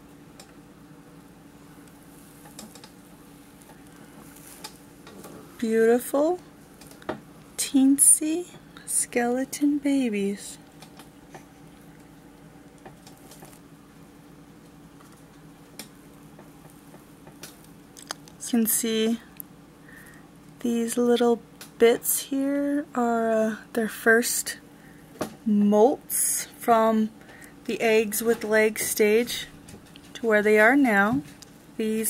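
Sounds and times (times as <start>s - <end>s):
steady low hum: 0.0s - 32.0s
forceps ticking and crackling: 0.2s - 22.1s, 27.2s - 31.9s.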